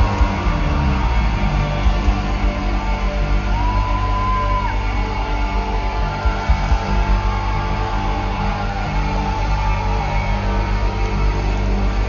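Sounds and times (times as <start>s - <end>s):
bass guitar: 0.0s - 12.0s
distorted electric guitars: 0.0s - 12.0s.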